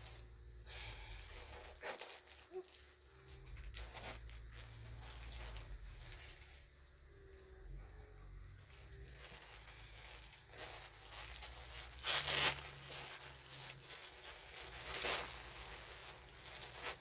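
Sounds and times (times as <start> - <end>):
wrapping paper rustling and tearing: 0.0 - 7.1, 8.6 - 17.0.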